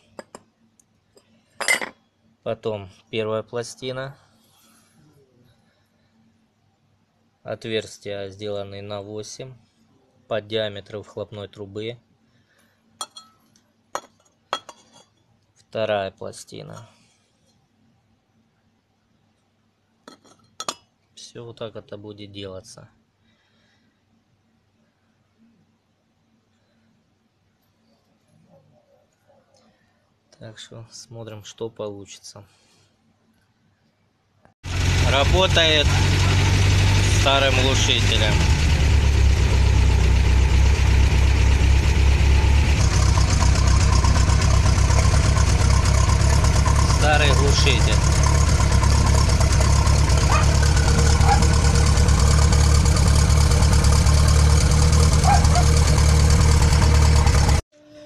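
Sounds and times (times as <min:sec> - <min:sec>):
van engine idling exhaust drone: 0:34.6 - 0:57.6.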